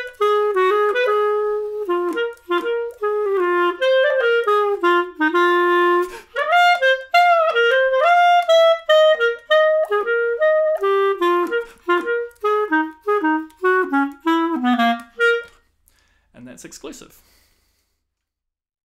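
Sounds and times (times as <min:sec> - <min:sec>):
solo clarinet jazz waltz: 0:00.0 - 0:15.7.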